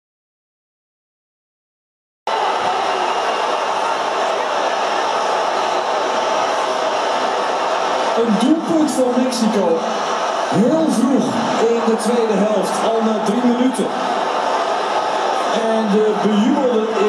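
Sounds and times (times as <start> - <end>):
crowd babble: 2.3 - 17.0
man's voice: 8.2 - 14.0, 15.5 - 17.0.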